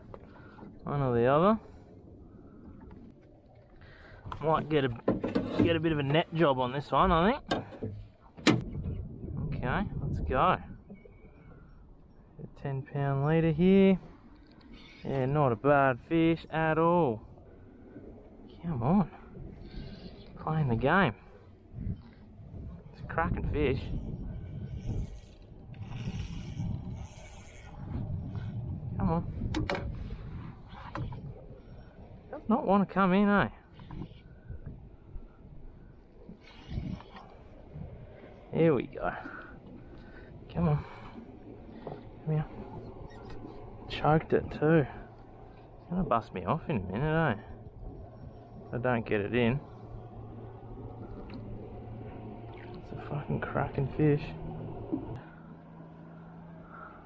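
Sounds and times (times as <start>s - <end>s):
low rumble of wind and water: 0.0s - 57.0s
wind noise on microphone: 8.4s - 10.9s, 21.7s - 32.3s, 33.8s - 35.3s, 36.4s - 38.2s.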